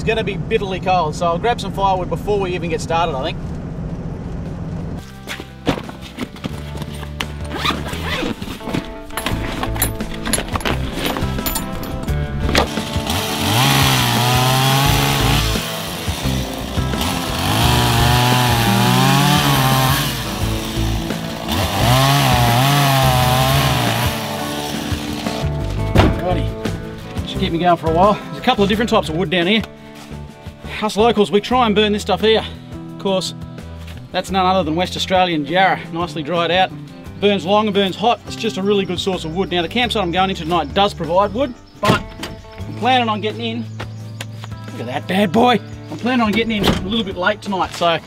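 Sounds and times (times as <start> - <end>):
background music: 5.0 - 48.0
chainsaw cutting log: 12.5 - 25.5.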